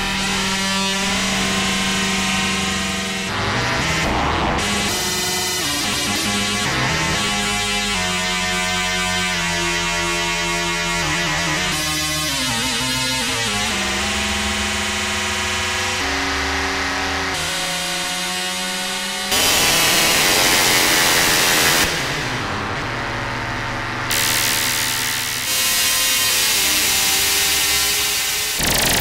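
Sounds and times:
harsh noisy synth buzz: 0.0s - 29.0s
synthesizer tones: 28.6s - 29.0s.

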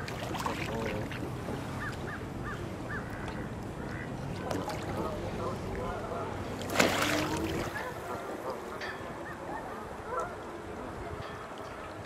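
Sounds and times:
low rumble of wind or water: 0.0s - 12.0s.

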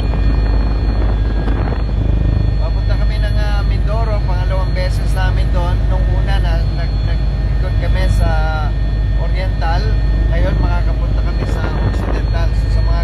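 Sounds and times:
helicopter engine and rotor drone: 0.0s - 13.0s.

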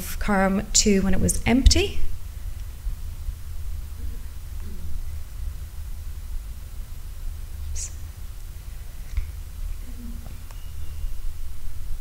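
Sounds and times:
sound system hum: 0.0s - 12.0s
soft hiss: 1.2s - 12.0s.

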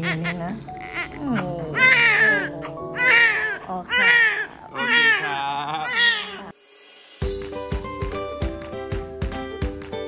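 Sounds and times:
newborn baby crying: 0.0s - 6.5s.

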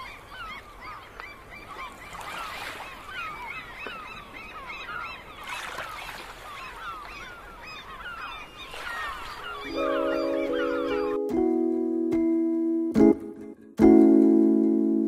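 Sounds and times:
flock of birds chirping: 0.0s - 11.3s.

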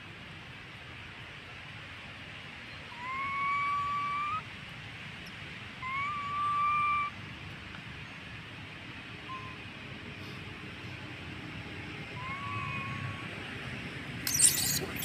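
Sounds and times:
baby monkey coo calls: 14.3s - 15.0s.

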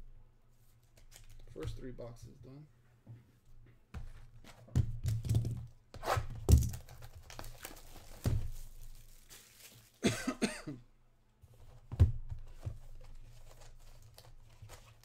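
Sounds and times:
knocks and thumps on cardboard box: 6.3s - 6.9s, 11.8s - 12.8s.

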